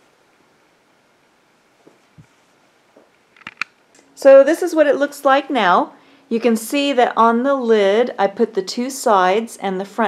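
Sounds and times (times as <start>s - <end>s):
sharp clicks: 3.4s - 4.0s.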